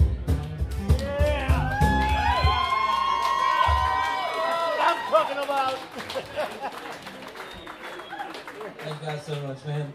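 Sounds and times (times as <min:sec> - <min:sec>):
live band playing: 0:00.0 - 0:04.2
crowd cheering and whooping: 0:01.1 - 0:08.7.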